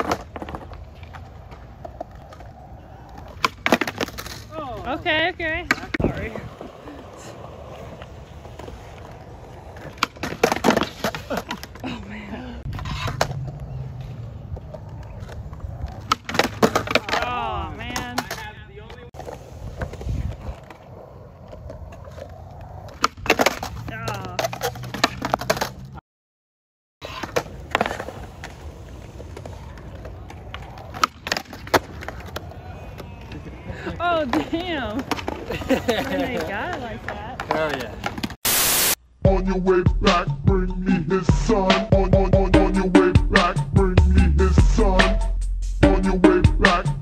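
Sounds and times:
skateboard clacking on ground: 0.0 - 11.9, 12.6 - 26.0, 27.0 - 38.4
skateboard wheels rolling on concrete: 0.0 - 26.0, 27.0 - 39.0.

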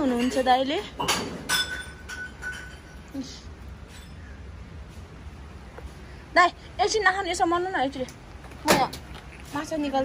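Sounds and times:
hard object clinking: 1.0 - 3.0.

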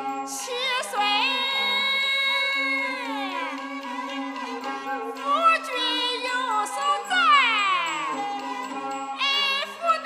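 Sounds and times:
traditional ensemble music: 1.7 - 10.0.

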